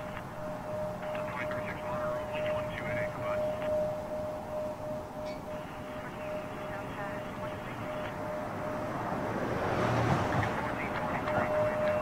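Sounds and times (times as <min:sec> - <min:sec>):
jet engines whining: 0:00.0 - 0:12.0.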